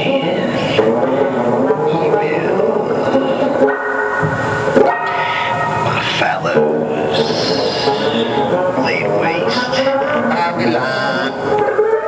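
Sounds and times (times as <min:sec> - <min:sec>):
electric guitar droning notes: 0:00.0 - 0:12.0.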